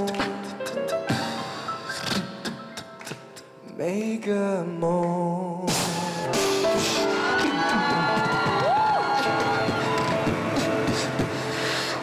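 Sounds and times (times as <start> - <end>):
beatbox percussion: 0.0 - 3.5, 9.4 - 11.8
grand piano chords: 0.0 - 5.6, 6.3 - 12.0.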